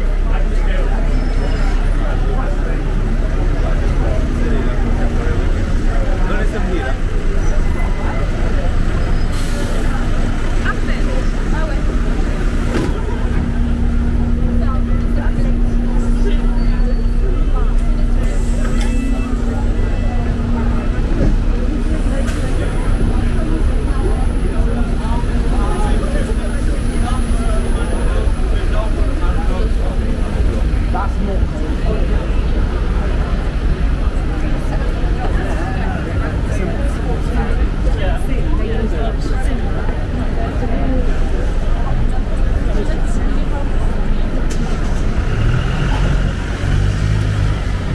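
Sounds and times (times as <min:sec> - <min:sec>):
bus engine humming: 0:00.0 - 0:47.9
passers-by talking: 0:00.0 - 0:47.9.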